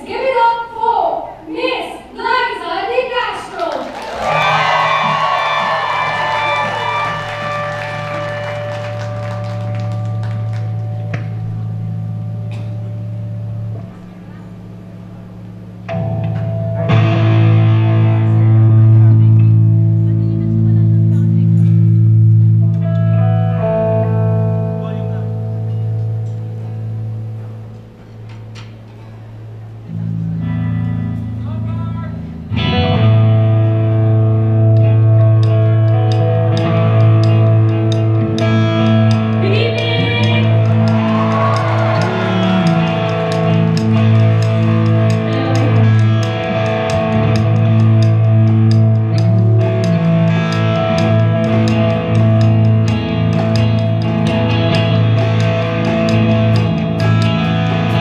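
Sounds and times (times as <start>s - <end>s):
electric guitar through effects: 3.6s - 58.0s
long held bass notes: 4.2s - 58.0s.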